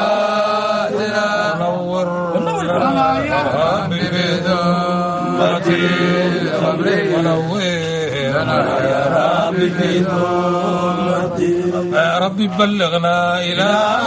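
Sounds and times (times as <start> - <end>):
low held drone tone: 0.0 - 12.0
men chanting: 0.0 - 14.0.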